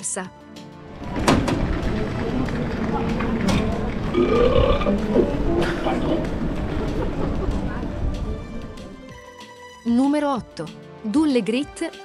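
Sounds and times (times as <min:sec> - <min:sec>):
recorded burp: 0:04.1 - 0:06.3.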